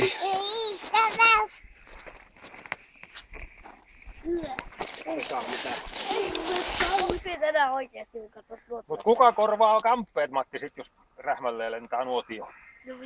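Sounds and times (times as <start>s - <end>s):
crackling campfire: 0.0s - 13.0s.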